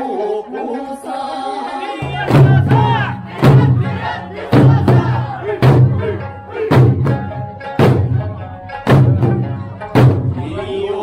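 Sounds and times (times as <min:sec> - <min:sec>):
folk music: 0:00.0 - 0:11.0
large barrel drums struck: 0:02.0 - 0:10.7.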